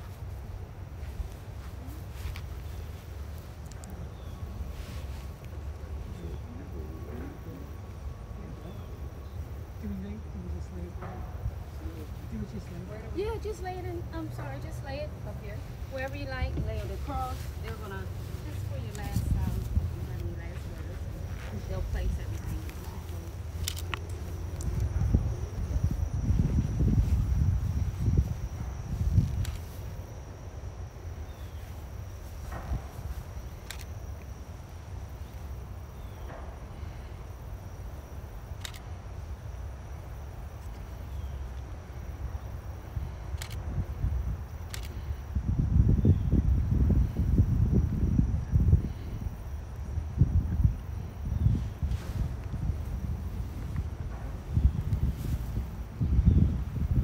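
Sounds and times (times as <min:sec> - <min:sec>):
wind buffeting microphone: 0:00.0 - 0:30.4, 0:42.3 - 0:57.0
faint high whine: 0:00.0 - 0:57.0.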